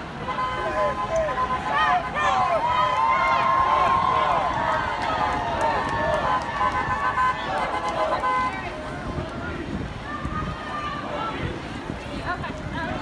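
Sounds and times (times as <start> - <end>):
crowd shouting: 0.0 - 11.6.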